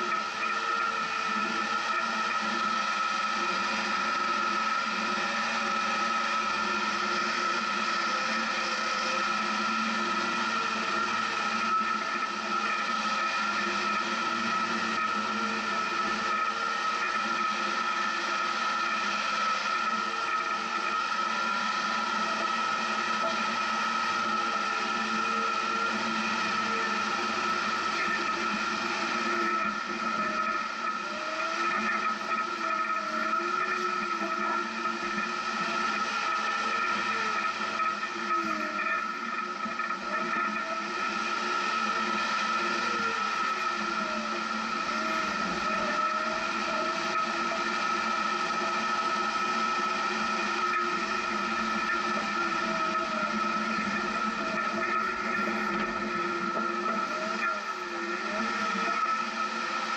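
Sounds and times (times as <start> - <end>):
constant high whine: 0.0 - 59.9.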